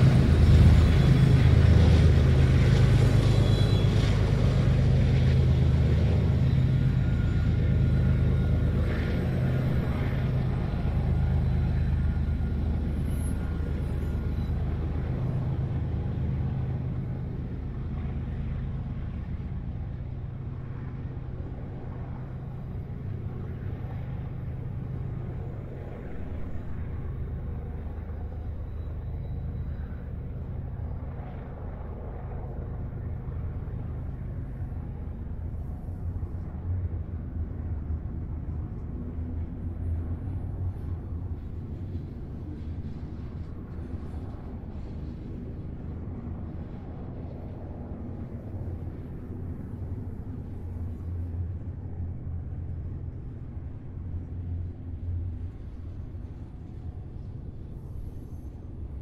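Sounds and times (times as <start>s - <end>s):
diesel engine rumble: 0.0s - 19.8s
freight train passing: 0.0s - 59.0s.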